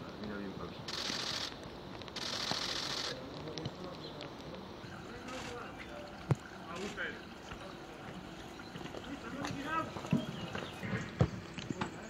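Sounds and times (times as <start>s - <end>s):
distant voices: 0.0s - 12.0s
short bursts of hiss: 0.8s - 3.2s.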